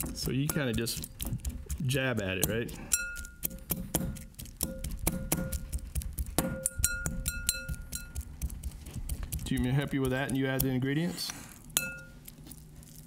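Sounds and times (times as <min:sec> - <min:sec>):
fork clicking against glass bowl: 0:02.4 - 0:05.8, 0:06.4 - 0:08.5
glass bowl ringing: 0:06.5 - 0:08.2, 0:11.8 - 0:12.2.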